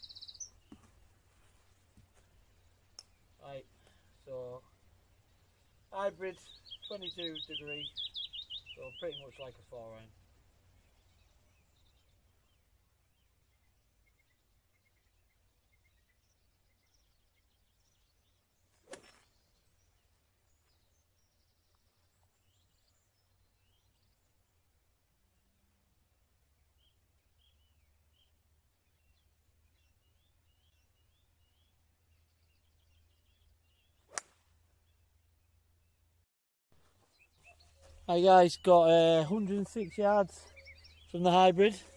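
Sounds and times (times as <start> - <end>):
faint birdsong: 0.0 - 41.9.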